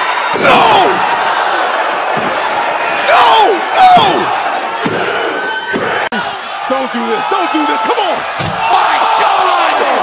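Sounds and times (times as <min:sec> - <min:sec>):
arena crowd noise: 0:00.0 - 0:10.0
loud shout: 0:00.0 - 0:10.0.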